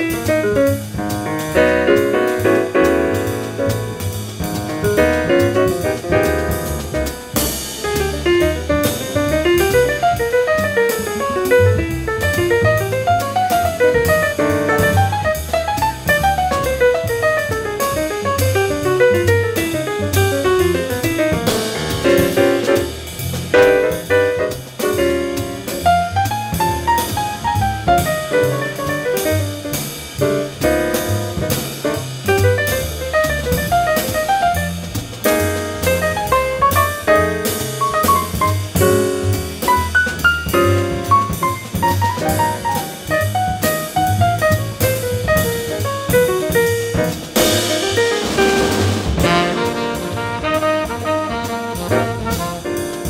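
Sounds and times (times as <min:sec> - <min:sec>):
fast improvised solo line: 0:00.0 - 0:53.0
jazz quintet playing: 0:00.0 - 0:53.0.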